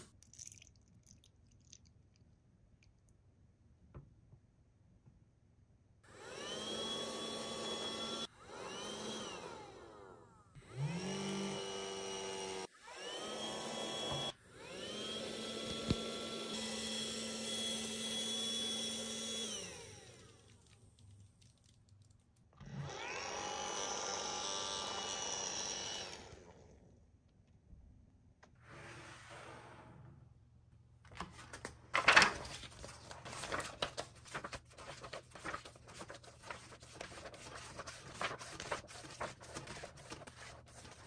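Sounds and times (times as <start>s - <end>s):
small fan motor whirring: 6.2s - 20.4s, 22.7s - 26.6s.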